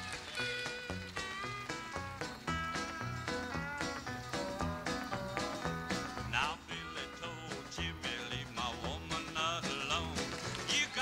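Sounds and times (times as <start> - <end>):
country band playing: 0.0 - 11.0
sliding melody instrument: 0.0 - 11.0.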